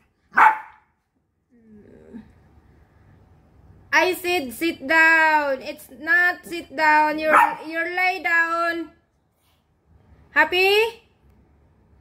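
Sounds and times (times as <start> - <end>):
dog barking sharply: 0.3 - 0.9, 7.3 - 7.7.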